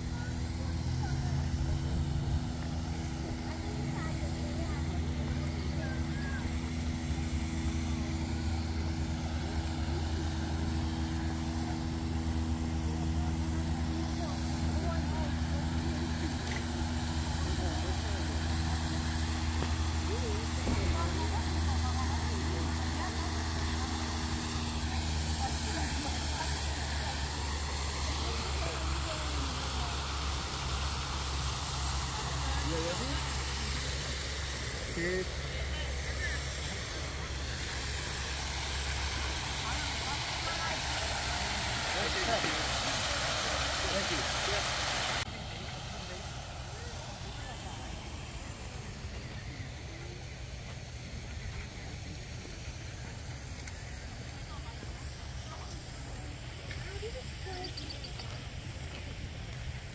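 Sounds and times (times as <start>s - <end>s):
fountain water spraying: 0.0s - 59.9s
low mechanical hum: 0.0s - 59.9s
people's voices: 0.0s - 59.9s.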